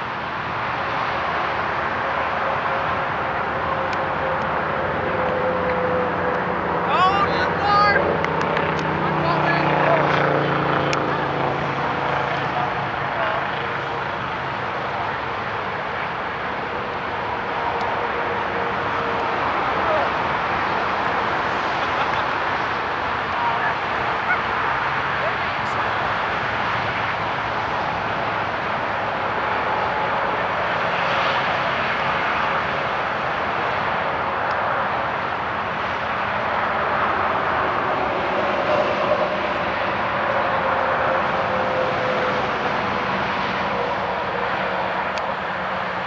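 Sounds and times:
outdoor noise: 0.0 - 46.0
engine passing: 0.6 - 46.0
players calling out: 6.8 - 14.2.

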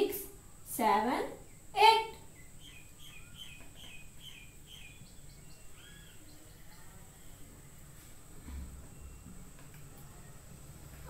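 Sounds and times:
faint bird chirping: 0.0 - 11.0.

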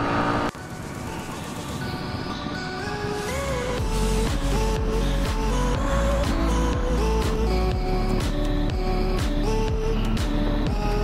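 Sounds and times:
motorcycle engine and wind: 0.0 - 7.6
road noise: 0.0 - 11.0.

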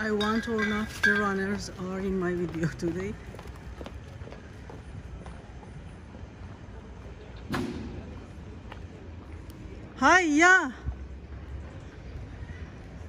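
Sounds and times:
distant traffic rumble: 0.0 - 13.0.

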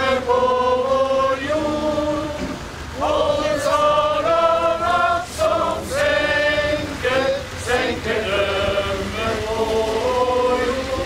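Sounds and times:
people singing slow song: 0.0 - 11.0.

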